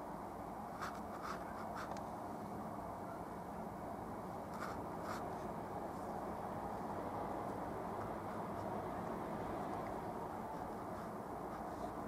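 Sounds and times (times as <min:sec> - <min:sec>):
low background noise: 0:00.0 - 0:12.0
paintbrush strokes on canvas: 0:00.7 - 0:02.0, 0:04.5 - 0:06.2, 0:06.8 - 0:12.0.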